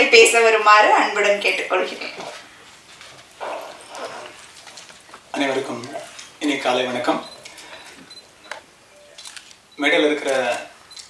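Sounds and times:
man speaking through microphone: 0:05.4 - 0:07.4, 0:09.8 - 0:10.7.

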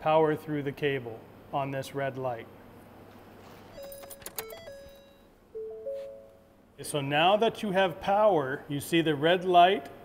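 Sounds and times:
electronic start-up beeps: 0:03.8 - 0:06.4.

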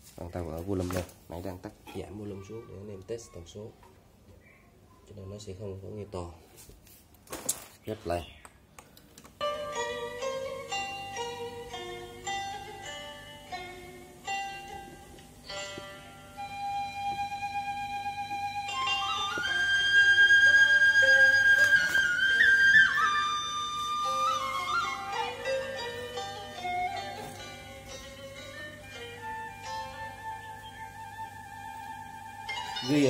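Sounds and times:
instrumental music over loudspeakers: 0:09.4 - 0:33.0.

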